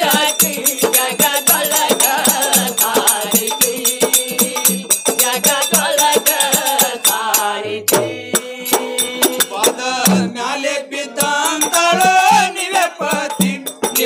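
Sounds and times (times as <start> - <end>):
barrel drum beat: 0.0 - 10.6, 11.2 - 14.0
jingling percussion: 0.0 - 14.0
men singing: 0.0 - 14.0.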